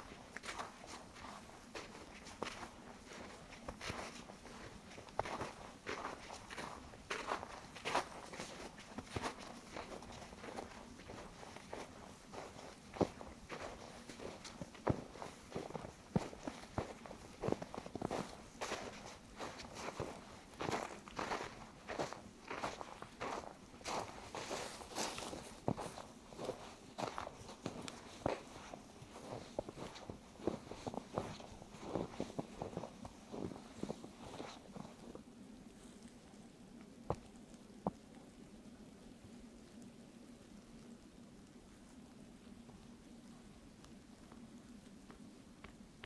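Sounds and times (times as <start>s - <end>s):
footsteps crunching in snow: 0.0s - 35.2s.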